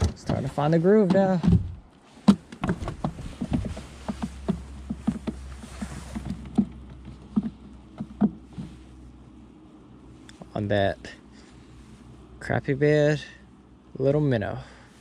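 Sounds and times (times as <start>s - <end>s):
knocks and clicks in a boat: 0.0s - 8.8s
low steady hum: 0.0s - 15.0s.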